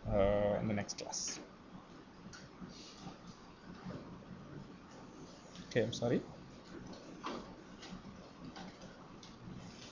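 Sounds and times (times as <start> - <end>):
low steady hum: 0.0 - 9.9.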